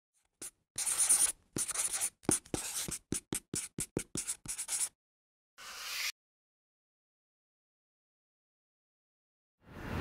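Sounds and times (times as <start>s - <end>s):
pen scratching on paper: 0.4s - 5.0s.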